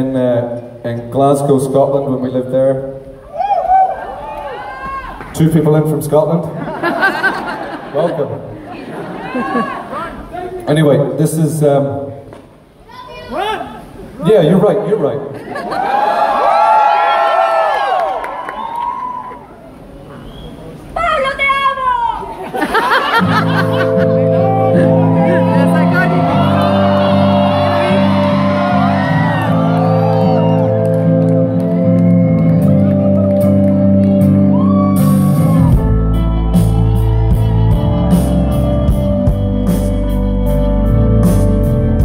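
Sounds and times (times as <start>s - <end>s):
audience whooping and shouting: 3.2s - 5.3s, 15.6s - 20.0s, 23.8s - 39.3s
keyboard chords: 23.0s - 42.0s
live band playing: 23.0s - 42.0s.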